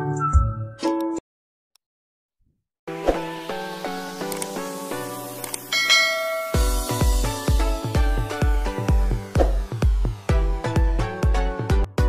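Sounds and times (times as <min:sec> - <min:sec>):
mouse-click sound effects: 0:04.2 - 0:04.6, 0:05.4 - 0:05.7
bright bell chime: 0:05.7 - 0:07.2
electronic dance beat: 0:06.4 - 0:11.7.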